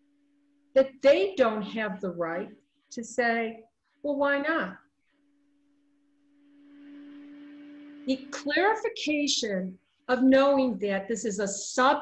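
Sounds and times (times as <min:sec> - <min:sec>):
low hum: 0:04.8 - 0:08.9
soft hiss: 0:06.2 - 0:08.6.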